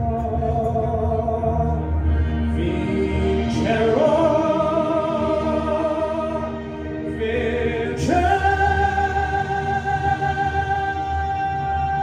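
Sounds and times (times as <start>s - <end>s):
backing music: 0.0s - 12.0s
voices singing in harmony: 0.0s - 12.0s.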